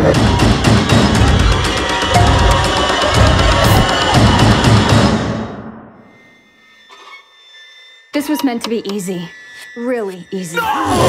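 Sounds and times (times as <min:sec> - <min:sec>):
high-pitched ringing tones: 0:05.9 - 0:11.0.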